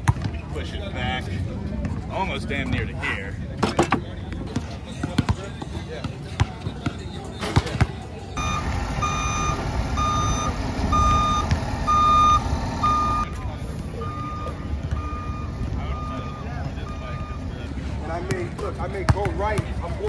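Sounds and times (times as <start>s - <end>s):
reversing alarm beeping: 8.4s - 17.7s
diesel engine running: 8.4s - 18.0s.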